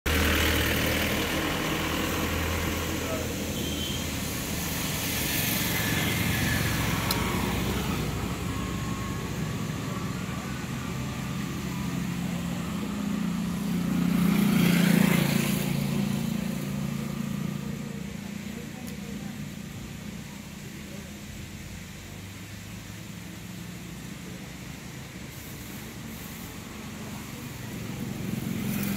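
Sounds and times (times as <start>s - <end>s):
road traffic passing: 0.0s - 28.9s
vehicle passing close: 0.1s - 19.4s, 22.6s - 28.9s.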